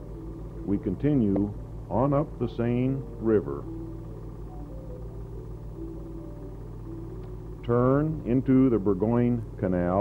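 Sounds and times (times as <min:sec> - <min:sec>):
faint held music notes: 0:00.0 - 0:10.0
steady low hum: 0:00.0 - 0:10.0.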